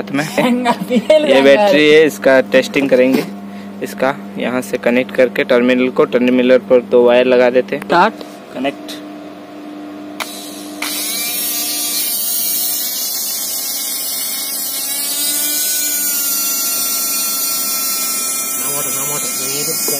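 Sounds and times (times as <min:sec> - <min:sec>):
electric motor whining: 0:10.2 - 0:19.9.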